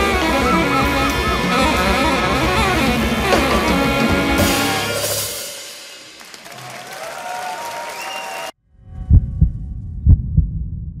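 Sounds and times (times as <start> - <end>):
audience applause: 5.9 - 8.6
whistles: 7.7 - 8.6
low hum: 8.6 - 11.0
deep double thumps: 8.9 - 11.0.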